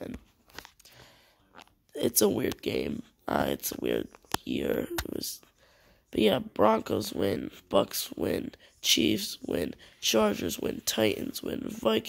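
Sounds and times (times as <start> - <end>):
person speaking: 0.0 - 12.0
person breathing softly: 0.8 - 1.5, 5.4 - 6.1.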